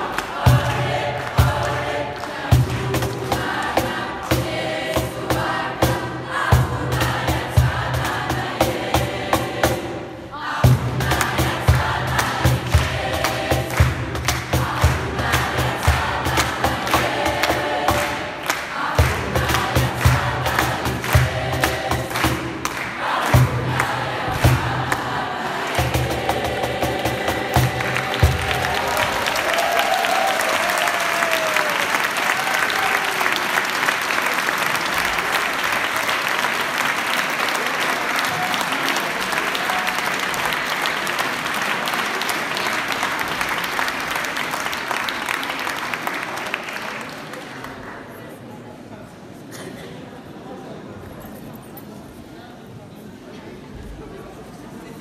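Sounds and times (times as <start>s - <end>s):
youth choir singing: 0.0s - 30.6s
cajon beat: 10.7s - 18.2s, 18.8s - 29.2s
applause: 13.7s - 15.0s, 15.8s - 19.2s, 21.0s - 21.3s, 22.1s - 24.0s, 27.8s - 48.4s.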